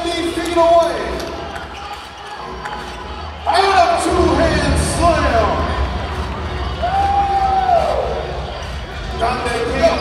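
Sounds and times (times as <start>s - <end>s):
voices in large hall: 0.0s - 10.0s.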